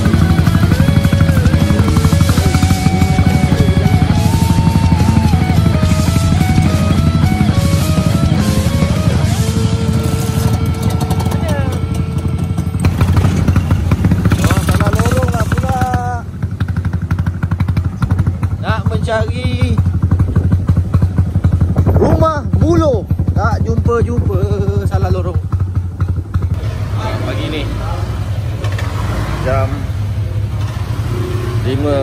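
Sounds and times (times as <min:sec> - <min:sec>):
background music: 0:00.0 - 0:13.3
small motorcycles running: 0:00.0 - 0:32.0.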